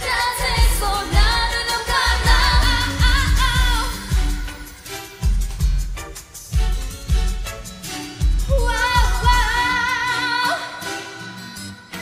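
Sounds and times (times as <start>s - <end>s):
heavy kick drum beats: 0.0s - 4.6s, 5.2s - 9.6s
pop backing track: 0.0s - 12.0s.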